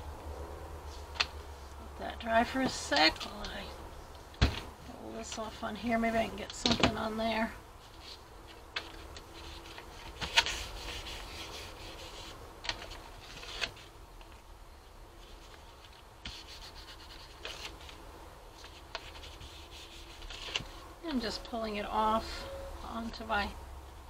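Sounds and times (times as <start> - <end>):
paper rustling: 7.8 - 14.4, 15.2 - 18.0, 18.6 - 20.8
paper crackles: 15.2 - 18.0, 18.6 - 20.8.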